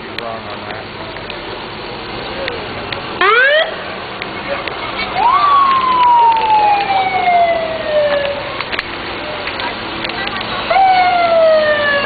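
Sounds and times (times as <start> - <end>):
emergency vehicle siren: 3.2 - 3.8, 5.0 - 9.6, 10.7 - 12.0.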